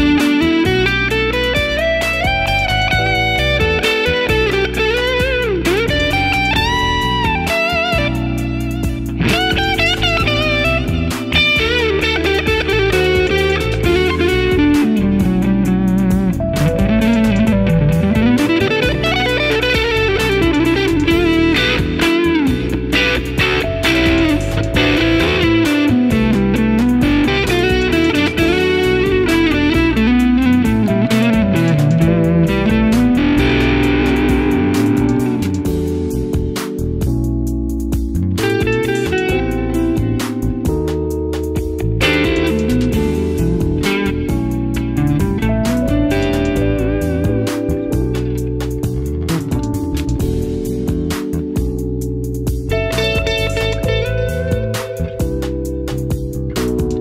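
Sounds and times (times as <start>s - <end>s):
electric guitar lead melody: 0.0s - 57.0s.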